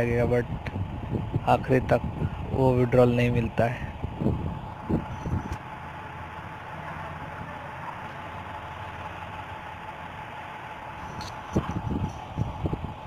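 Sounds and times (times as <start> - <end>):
faint constant hum: 0.0 - 13.0.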